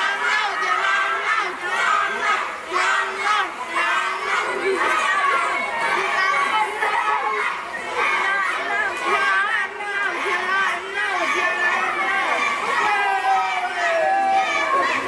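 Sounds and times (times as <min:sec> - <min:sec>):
children shouting: 0:00.0 - 0:15.0
crowd chattering: 0:00.0 - 0:15.0.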